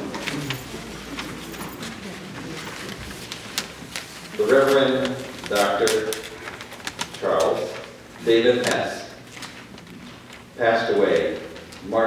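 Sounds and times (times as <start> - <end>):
man speaking into a microphone: 4.4 - 6.3, 7.2 - 9.2, 10.6 - 12.0.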